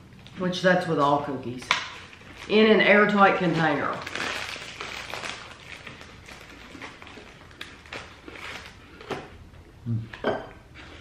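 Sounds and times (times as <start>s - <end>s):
biscuit being chewed: 4.1s - 9.4s.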